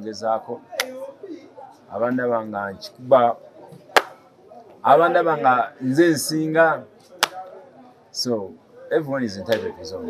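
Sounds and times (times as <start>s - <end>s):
man speaking: 0.0s - 3.4s, 4.8s - 6.9s, 8.1s - 10.0s.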